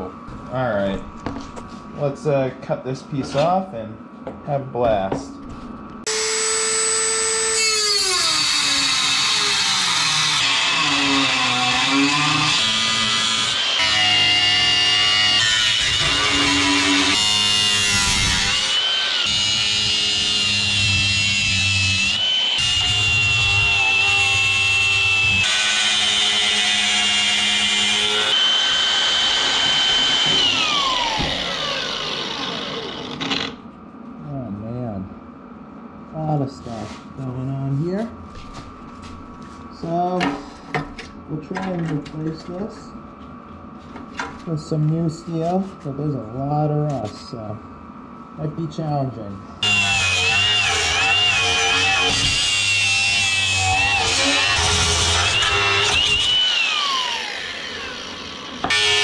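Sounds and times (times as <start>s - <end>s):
grinder cutting steel: 6.1s - 33.6s, 49.6s - 59.0s.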